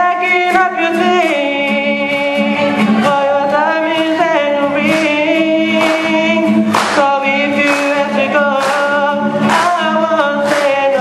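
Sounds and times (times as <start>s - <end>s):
musical accompaniment with steady beat: 0.0s - 11.0s
person singing into microphone: 0.0s - 11.0s.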